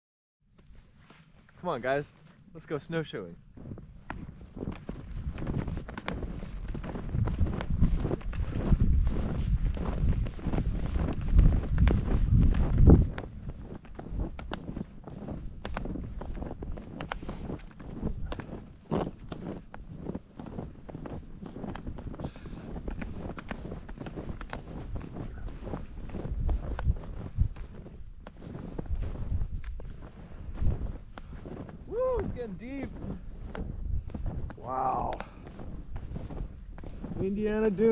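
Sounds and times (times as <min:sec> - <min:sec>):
snowshoe footsteps in snow: 0:00.6 - 0:37.9.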